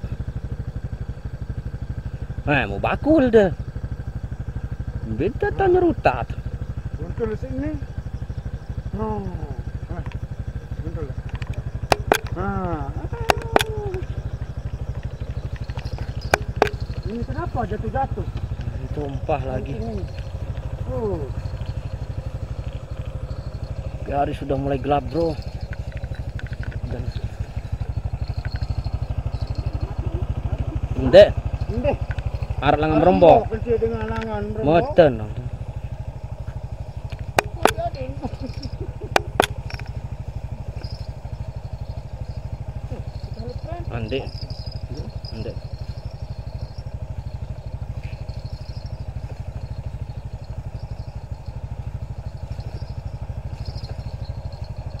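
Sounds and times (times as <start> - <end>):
motorcycle engine idling: 0.0 - 55.0.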